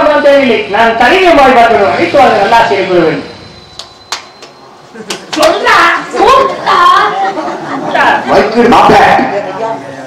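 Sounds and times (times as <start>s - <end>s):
actors speaking: 4.8s - 10.0s.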